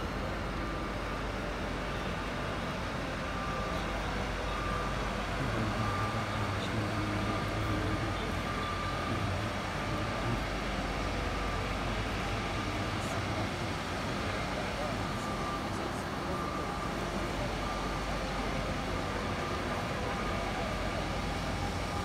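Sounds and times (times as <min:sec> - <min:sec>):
ambient rumble and hiss: 0:00.0 - 0:22.0
faint thin tone: 0:01.9 - 0:22.0.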